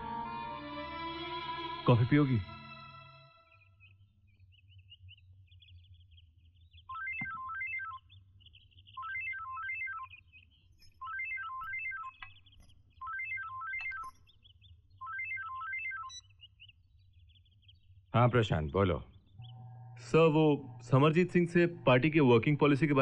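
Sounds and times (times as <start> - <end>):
faint birdsong: 0.0 - 23.0
mobile phone ringtone melody: 6.9 - 7.9, 11.1 - 12.1, 13.0 - 14.0, 15.0 - 16.2.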